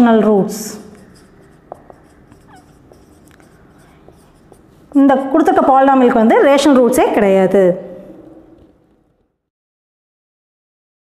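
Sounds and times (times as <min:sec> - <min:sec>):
marker squeaking on whiteboard: 0:00.8 - 0:05.6
marker tapping on whiteboard: 0:01.0 - 0:04.8.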